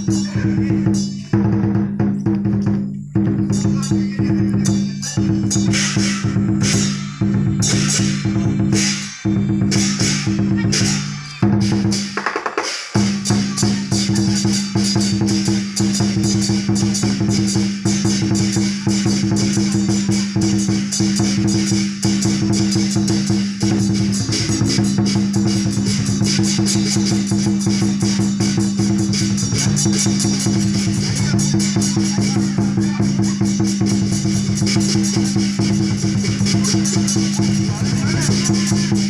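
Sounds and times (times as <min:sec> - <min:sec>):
cymbals crashing: 0:00.0 - 0:39.0
drums beating: 0:00.0 - 0:39.0.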